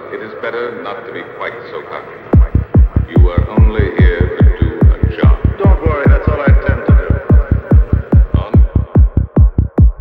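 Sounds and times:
pounding kick and bass pulse: 2.4 - 10.0.

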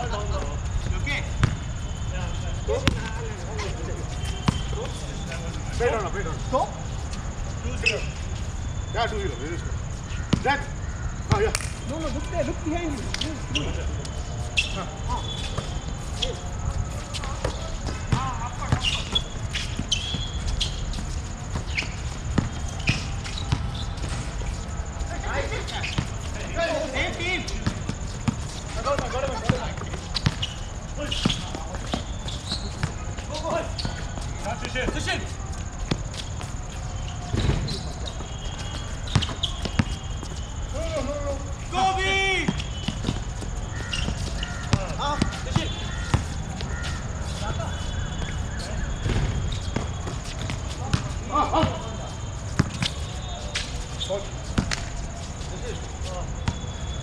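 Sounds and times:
players calling out: 0.0 - 57.0
basketball bouncing on hard court: 1.4 - 1.6, 39.1 - 40.0.

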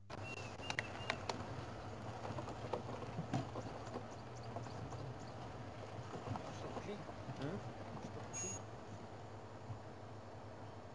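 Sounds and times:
vehicle engine hum: 0.0 - 10.9
whistled bird notes: 0.1 - 1.4
vehicle body knocks and rattles: 0.8 - 8.4.

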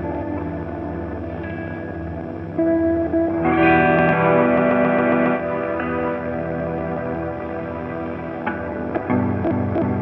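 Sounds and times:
ambient electric guitar drone: 0.0 - 10.0.

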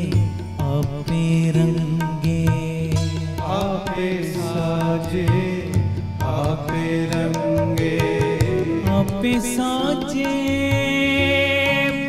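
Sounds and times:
harmonium chords: 0.0 - 12.0
tabla strokes: 0.0 - 12.0
voices singing devotional song: 3.4 - 12.0.

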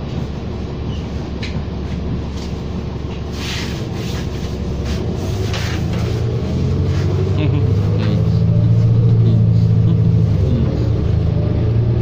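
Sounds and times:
bus engine drone: 0.0 - 12.0
road rumble: 0.0 - 12.0.

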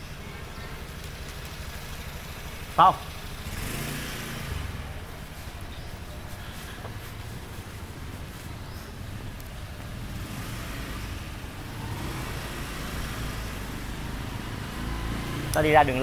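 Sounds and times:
road and wind noise: 0.0 - 16.0.

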